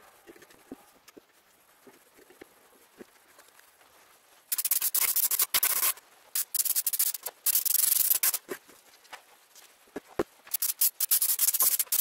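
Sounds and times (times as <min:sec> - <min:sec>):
airbrush spraying hiss: 0:04.5 - 0:08.6, 0:10.5 - 0:12.0.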